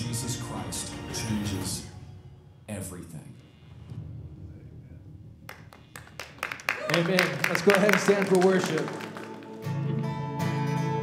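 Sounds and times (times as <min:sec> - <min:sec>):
low room rumble: 0:00.5 - 0:06.8
scattered hand claps: 0:05.5 - 0:10.0.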